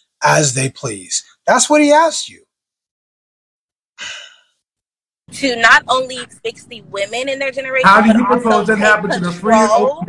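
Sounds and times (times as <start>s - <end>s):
person sighing: 4.0s - 4.4s.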